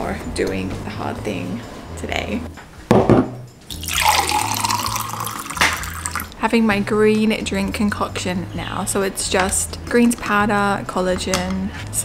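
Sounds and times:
water pouring into a glass: 0:03.7 - 0:06.4.

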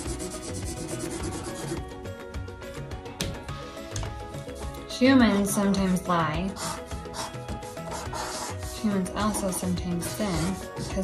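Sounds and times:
marker scratching on paper: 0:00.0 - 0:01.8, 0:06.5 - 0:11.0
soft background music: 0:00.0 - 0:11.0.

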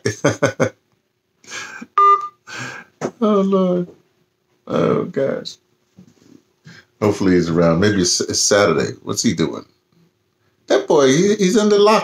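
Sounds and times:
man laughing softly: 0:00.0 - 0:00.7
short electronic phone beep: 0:02.0 - 0:02.3.

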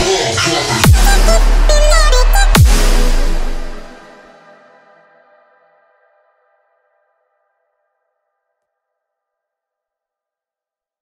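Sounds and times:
sustained electronic chord: 0:00.8 - 0:05.0.

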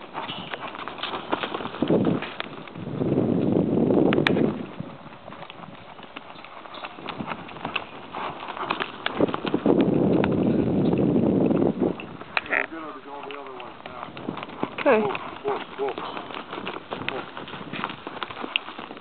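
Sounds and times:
hoofbeats in loose dirt: 0:00.0 - 0:19.0.

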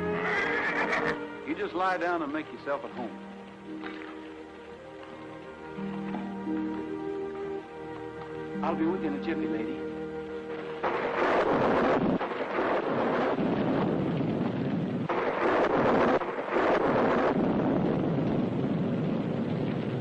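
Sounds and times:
heavy rain: 0:00.0 - 0:20.0
wind: 0:00.0 - 0:20.0
held music chord: 0:01.1 - 0:11.2.

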